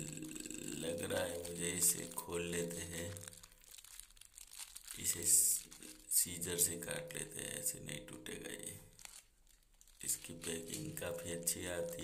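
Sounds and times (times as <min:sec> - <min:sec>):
plastic wrapper crinkling: 0:00.0 - 0:12.0.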